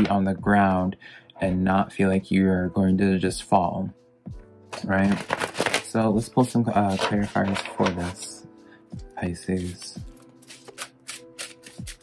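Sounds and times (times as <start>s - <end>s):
soft background music: 0.0s - 12.0s
cards being shuffled: 4.7s - 6.0s, 6.7s - 8.4s, 9.4s - 12.0s.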